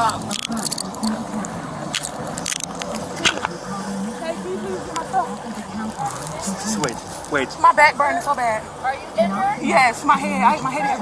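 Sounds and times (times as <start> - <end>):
handcuffs jingling and clicking: 0.0 - 1.2, 1.9 - 3.4
passing road traffic: 0.0 - 11.0.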